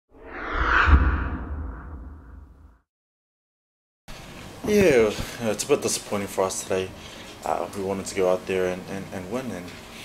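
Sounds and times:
whoosh: 0.1s - 2.8s
deep low rumble: 0.2s - 2.8s.

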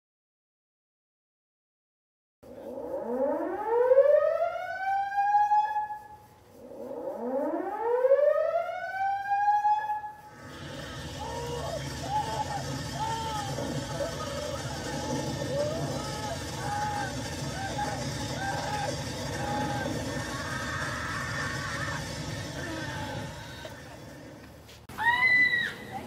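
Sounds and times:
high-pitched scream: 9.0s - 24.2s, 24.9s - 26.0s
people chattering: 10.4s - 26.0s.

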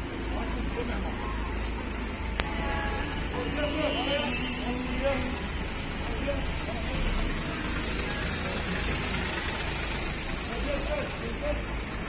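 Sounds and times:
car and truck engines idling: 0.0s - 12.0s
street noise: 0.0s - 12.0s.

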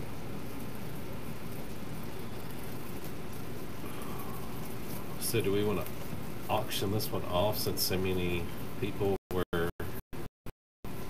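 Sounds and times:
steady background hiss: 0.0s - 9.2s.

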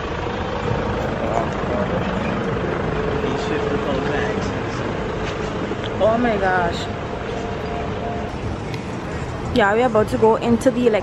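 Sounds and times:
passing traffic hum: 0.0s - 11.0s
vehicle engine steady tone: 0.0s - 11.0s.

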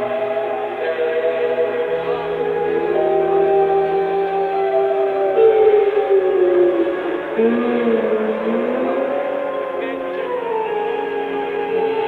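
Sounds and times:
psychedelic rock band droning: 0.0s - 12.0s.

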